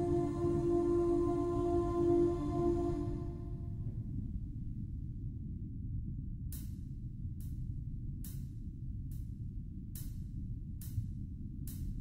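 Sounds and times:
deep low rumble: 0.0 - 12.0.

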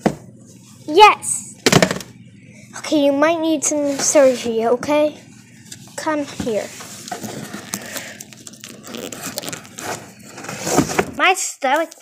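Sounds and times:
rustling and scraping: 3.6 - 4.8, 5.6 - 11.2.

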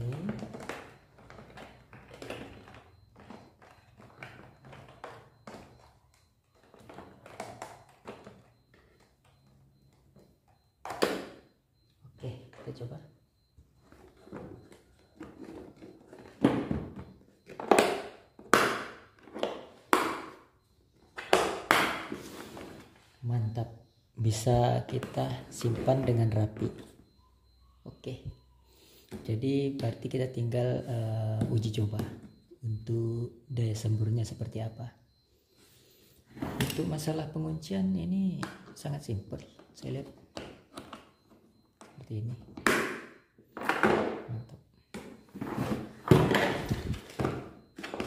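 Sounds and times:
handling and plastic knocks: 0.0 - 9.4, 43.6 - 48.0.

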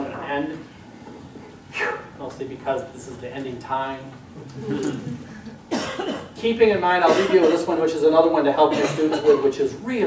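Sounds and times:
person coughing: 4.7 - 6.4, 7.0 - 7.7, 8.7 - 9.5.

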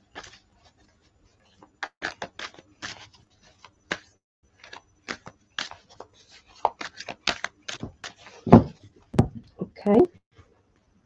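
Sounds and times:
cards being shuffled: 1.8 - 8.6.

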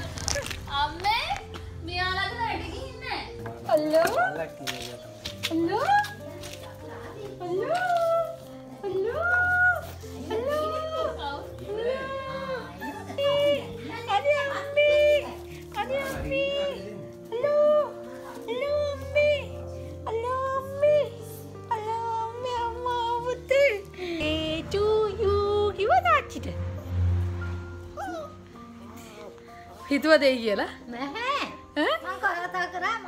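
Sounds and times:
puppy whining: 27.9 - 29.0.

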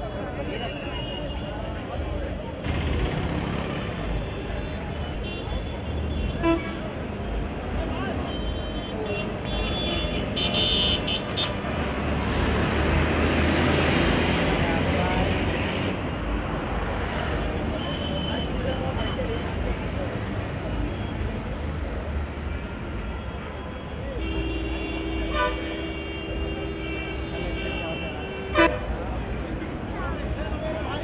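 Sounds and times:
crowd talking: 0.0 - 10.7, 12.7 - 31.0
passing traffic: 0.0 - 31.0
car horns honking: 8.3 - 11.6, 23.1 - 29.0.

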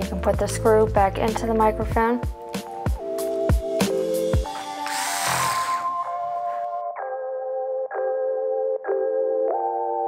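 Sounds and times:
held keyboard chords music: 0.0 - 10.0
electric screwdriver whirring: 4.6 - 6.0.

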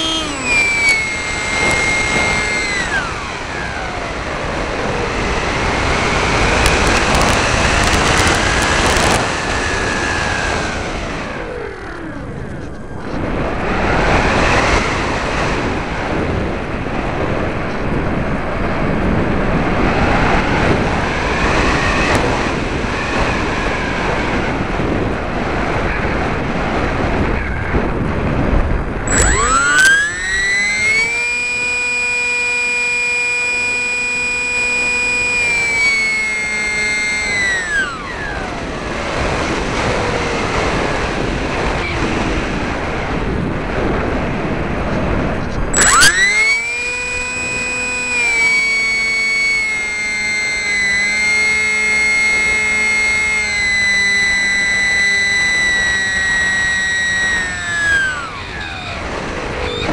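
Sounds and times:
electric motor propeller whining: 0.0 - 59.9.

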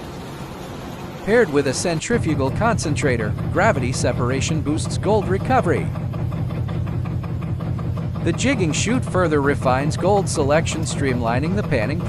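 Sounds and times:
faint fast rattle: 0.0 - 12.0
machinery humming: 0.0 - 12.0.

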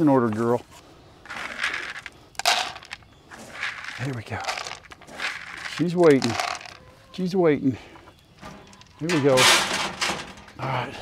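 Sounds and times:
feed pellets clattering on plastic dish: 1.3 - 6.8
feed rustling: 1.3 - 6.9, 7.9 - 10.8.

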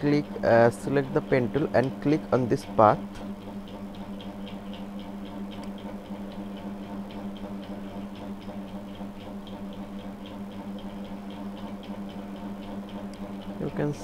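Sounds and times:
fast even ticking: 0.0 - 14.0
steady low hum: 0.0 - 14.0.

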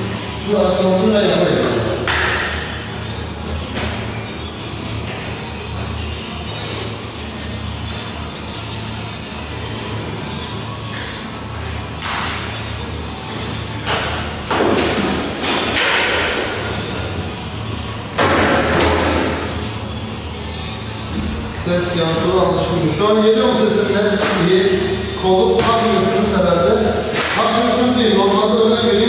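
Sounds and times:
dough slapped on metal table: 2.1 - 2.6.

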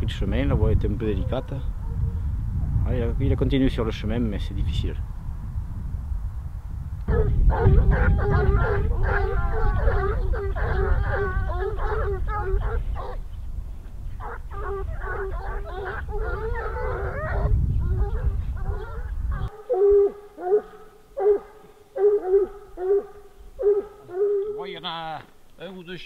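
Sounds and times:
wind rumbling on microphone: 0.0 - 24.4
hounds baying: 1.0 - 2.3, 7.1 - 13.4, 14.1 - 24.8.

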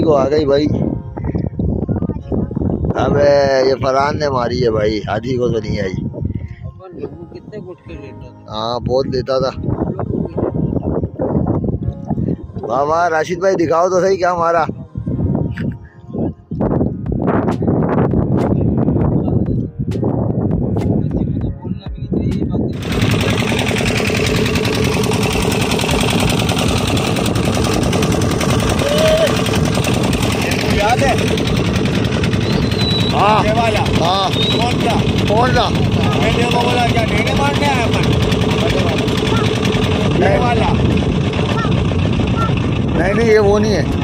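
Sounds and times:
low rumble: 0.0 - 44.0
boat engine pulsing: 22.7 - 44.0.

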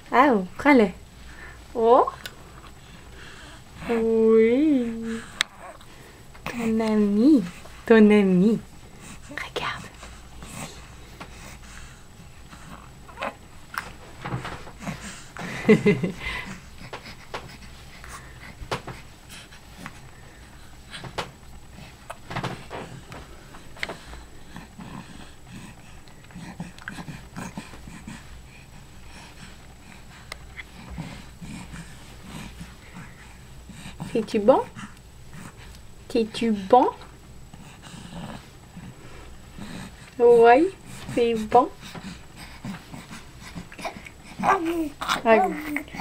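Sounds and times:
infant puffing breaths: 1.0 - 46.0
baby grunting softly: 42.7 - 46.0.

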